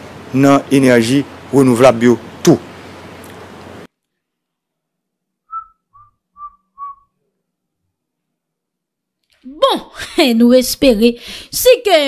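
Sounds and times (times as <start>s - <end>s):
short whistled notes: 5.5s - 7.2s.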